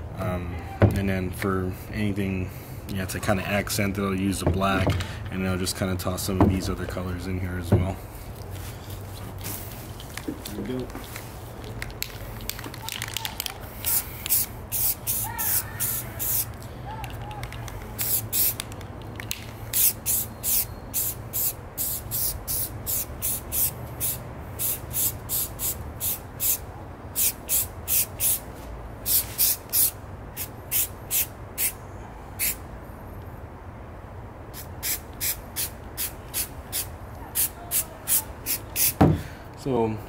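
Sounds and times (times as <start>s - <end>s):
spray paint can hissing bursts: 12.2s - 16.6s, 17.4s - 31.8s, 32.4s - 32.6s, 34.5s - 39.0s.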